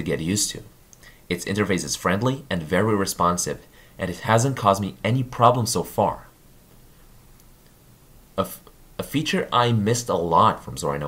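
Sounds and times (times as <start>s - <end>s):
man narrating: 0.0s - 0.7s, 1.3s - 6.4s, 8.4s - 11.0s.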